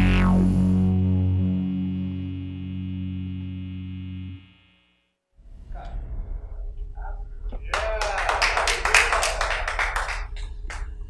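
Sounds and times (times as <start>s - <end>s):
people clapping: 7.5s - 11.0s.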